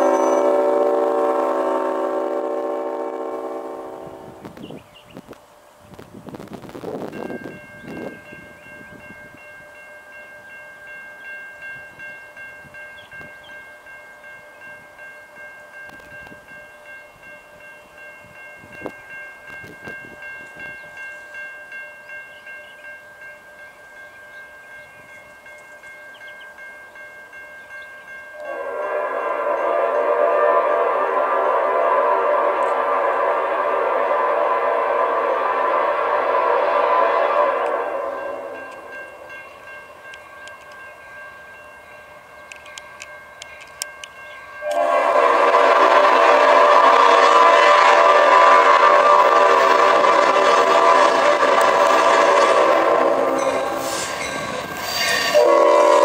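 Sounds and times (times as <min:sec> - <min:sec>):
crossing bell ringing: 0:00.0 - 0:04.3, 0:07.0 - 0:56.0
locomotive air horn blast: 0:00.0 - 0:04.5, 0:28.4 - 0:38.9, 0:44.6 - 0:56.0.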